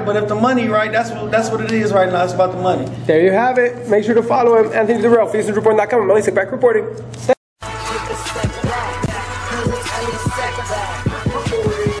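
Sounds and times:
hip-hop music: 7.2s - 12.0s.

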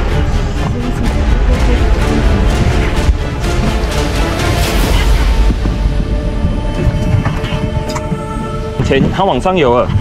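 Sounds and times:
steady low rumble: 0.0s - 9.2s
background music sustained notes: 0.0s - 10.0s.

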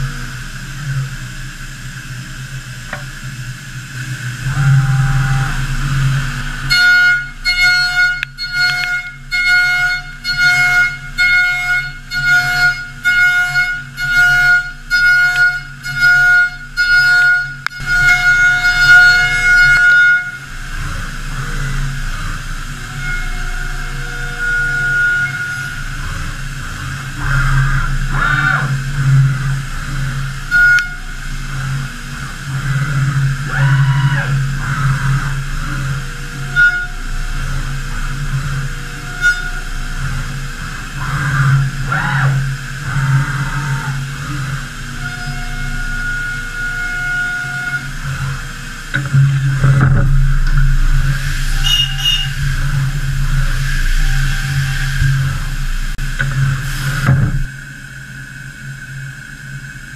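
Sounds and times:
machine axis drives whining: 0.0s - 59.9s
steady machine hum: 0.0s - 59.9s.

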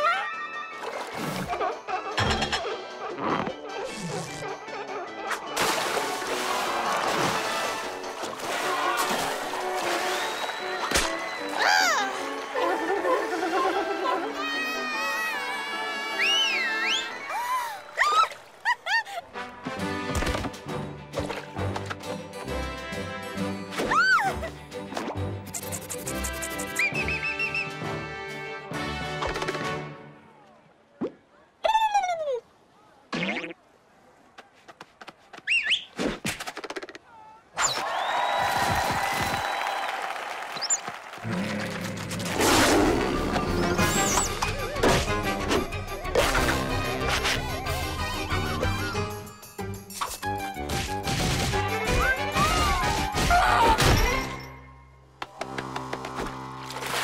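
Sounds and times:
swooping whistle-like tone: 10.0s - 11.9s, 26.7s - 27.8s
lively cartoon music: 19.4s - 30.2s, 43.0s - 54.6s
short warbling whistle: 25.6s - 27.8s.

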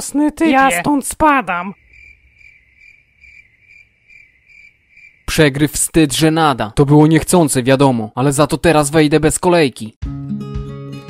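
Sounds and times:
cricket chirping: 1.4s - 5.7s.

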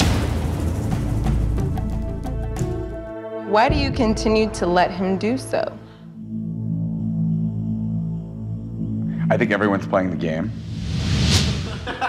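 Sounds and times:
low suspense drone: 3.7s - 11.0s.

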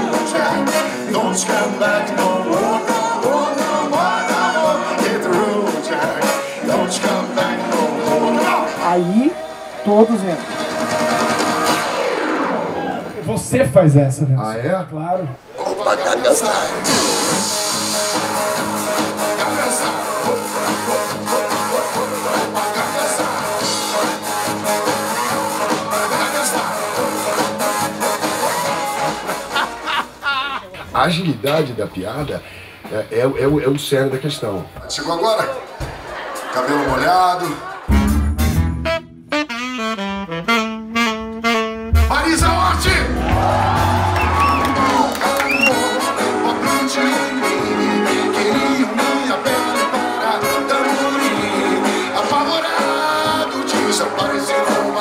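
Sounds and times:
upbeat band music: 0.0s - 14.4s, 16.2s - 30.2s, 34.9s - 55.0s
saxophone solo: 38.0s - 43.3s.

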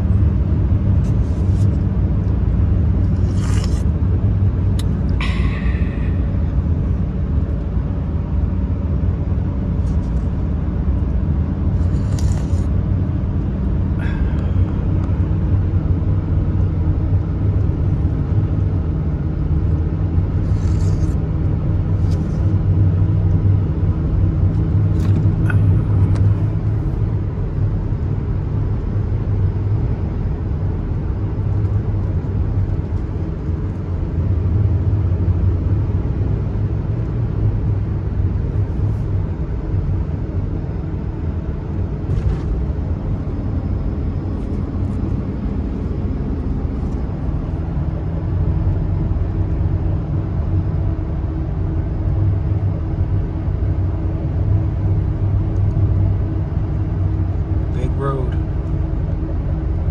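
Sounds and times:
engine and road noise in cabin: 0.0s - 59.9s.

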